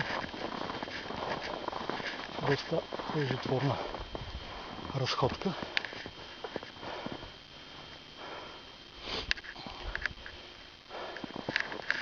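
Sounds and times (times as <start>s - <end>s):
man sniffing and breathing hard: 8.2s - 10.0s, 10.8s - 11.6s.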